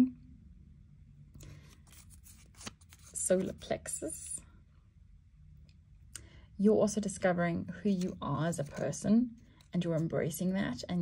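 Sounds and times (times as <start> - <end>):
paper crinkling and rustling: 1.4 - 3.7, 7.9 - 10.1.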